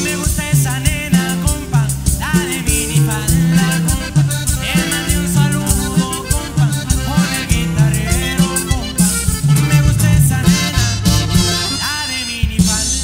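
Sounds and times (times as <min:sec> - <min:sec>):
accordion melody: 0:00.0 - 0:13.0
band playing with bass and drums: 0:00.0 - 0:13.0.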